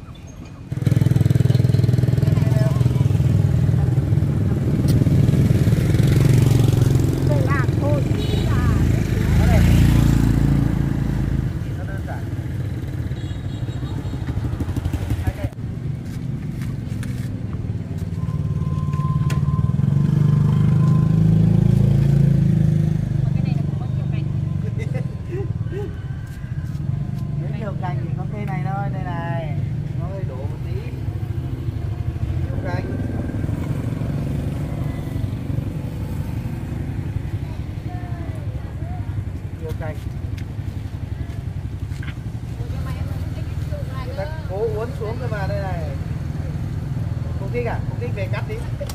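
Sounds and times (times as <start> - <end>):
motorcycle engine rumbling: 0.0 - 48.9.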